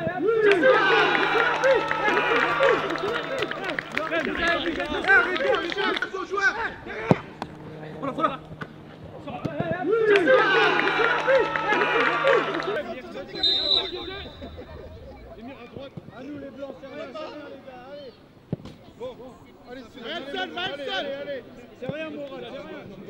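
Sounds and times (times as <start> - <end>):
men shouting and cheering: 0.0 - 7.4, 9.7 - 15.7.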